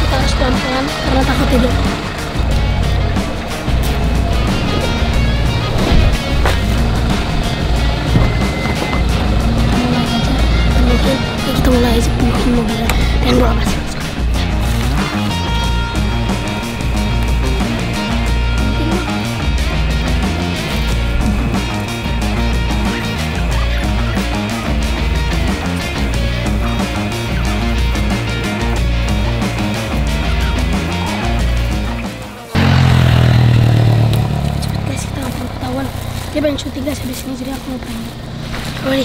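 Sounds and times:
low hum: 0:00.0 - 0:30.8, 0:31.4 - 0:38.7
music with pulsing bass beat: 0:00.0 - 0:39.0.

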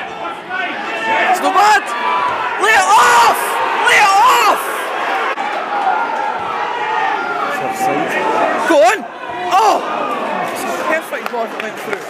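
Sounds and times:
crowd shouting and chatter: 0:00.0 - 0:12.0.

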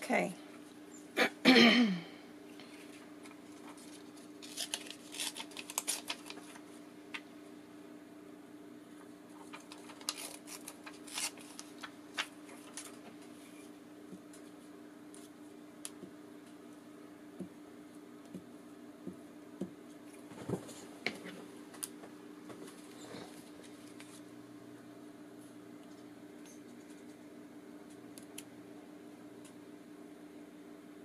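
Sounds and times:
faint steady hum: 0:00.0 - 0:31.0
paper rustling and crinkling: 0:02.6 - 0:07.2, 0:09.3 - 0:13.7, 0:21.8 - 0:24.3.

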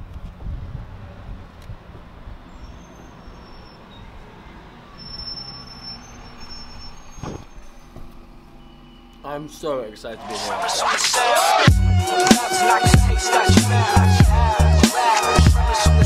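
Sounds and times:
traffic engine rumble: 0:00.0 - 0:11.0
bus passing: 0:00.0 - 0:11.6
faint high-pitched squeal: 0:02.5 - 0:09.7.

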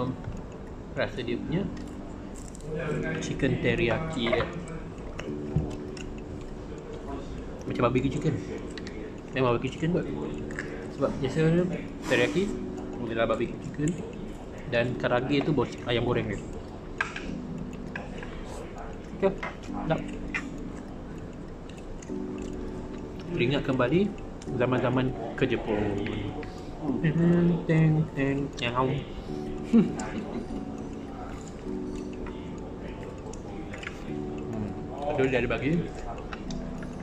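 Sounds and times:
man chewing: 0:00.2 - 0:01.0, 0:01.7 - 0:35.0
wet mouth clicks: 0:08.6 - 0:11.0, 0:16.4 - 0:24.5.

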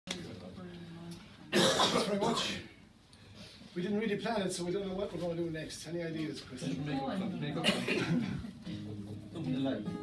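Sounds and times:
man coughing: 0:01.5 - 0:02.7, 0:07.6 - 0:08.5.

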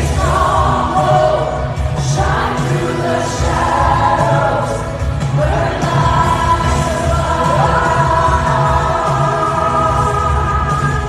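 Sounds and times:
band with heavy bass: 0:00.0 - 0:11.0
crowd singing along: 0:00.0 - 0:11.0
woman singing lead vocal: 0:00.0 - 0:11.0.

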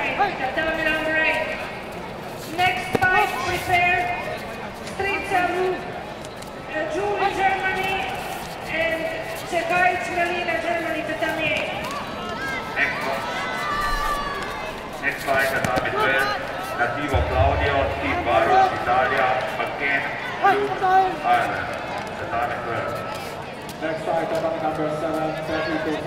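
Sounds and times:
voices shouting in a hall: 0:11.7 - 0:15.0.

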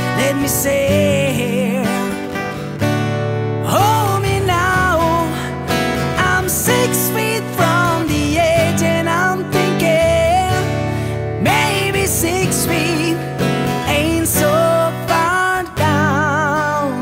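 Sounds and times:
man singing: 0:00.0 - 0:02.6, 0:03.6 - 0:17.0
strummed acoustic guitar: 0:00.0 - 0:17.0.

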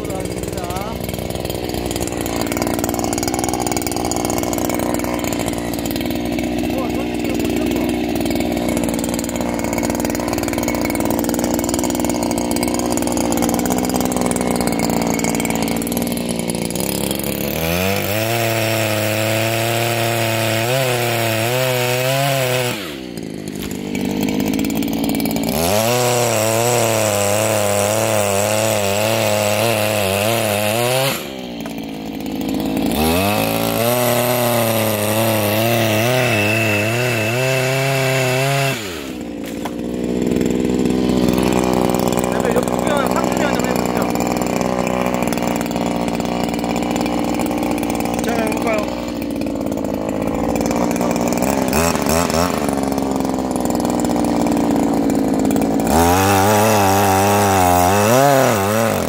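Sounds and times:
pole saw engine cutting branches: 0:00.0 - 0:59.0.

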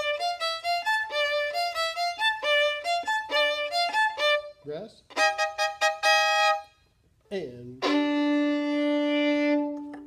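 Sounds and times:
violin long bowed note: 0:00.0 - 0:06.9, 0:07.7 - 0:10.0.

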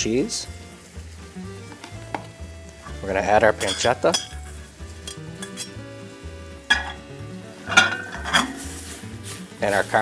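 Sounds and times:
faint sizzle from a pan: 0:00.0 - 0:10.0
quiet background music: 0:00.0 - 0:10.0.

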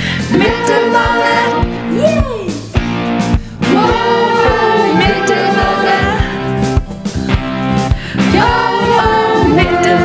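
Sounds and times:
group of voices singing: 0:00.0 - 0:02.7, 0:03.6 - 0:06.8, 0:08.1 - 0:10.0
band with steady beat: 0:01.6 - 0:08.9.

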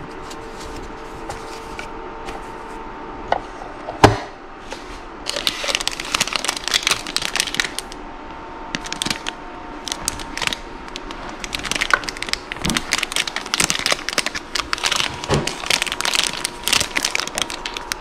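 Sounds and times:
plastic wrap crinkling: 0:05.3 - 0:08.0, 0:08.8 - 0:18.0.

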